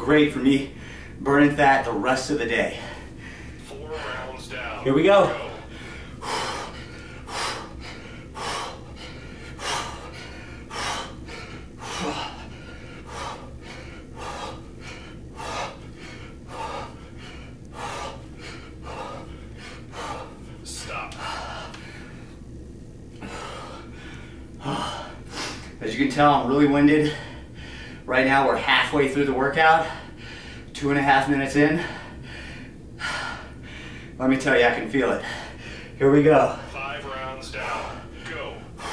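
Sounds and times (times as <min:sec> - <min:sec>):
low steady hum: 0:00.0 - 0:38.9
man breathing hard: 0:00.6 - 0:01.3, 0:02.5 - 0:04.4, 0:05.1 - 0:22.5, 0:23.1 - 0:25.8, 0:26.8 - 0:28.1, 0:29.6 - 0:30.8, 0:31.6 - 0:34.2, 0:35.1 - 0:36.8, 0:37.6 - 0:38.9.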